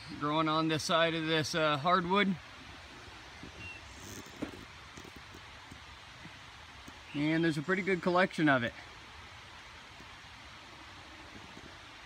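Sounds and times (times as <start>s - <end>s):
faint rustling: 2.6s - 7.1s.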